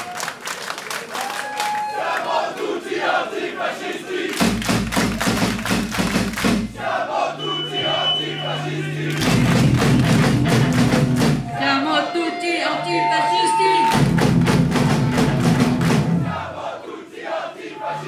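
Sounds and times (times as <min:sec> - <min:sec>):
crowd shouting a chant: 0:01.4 - 0:04.4, 0:06.7 - 0:09.6, 0:16.1 - 0:18.0
punk band playing: 0:04.4 - 0:16.6
rhythmic hits: 0:04.4 - 0:16.7.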